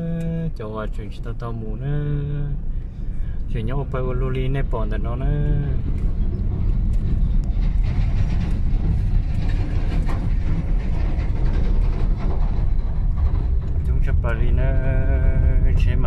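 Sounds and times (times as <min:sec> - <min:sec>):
vehicle rumbling on rough road: 0:00.0 - 0:16.0
truck passing alongside: 0:02.3 - 0:15.9.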